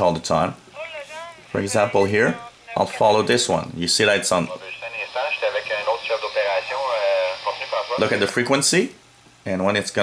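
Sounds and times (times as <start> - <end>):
tinny radio voice: 0.7 - 3.2, 4.0 - 8.5.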